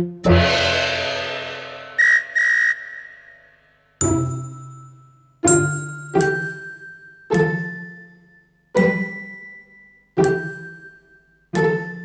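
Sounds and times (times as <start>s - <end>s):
whistle tooting: 2.0s - 3.5s.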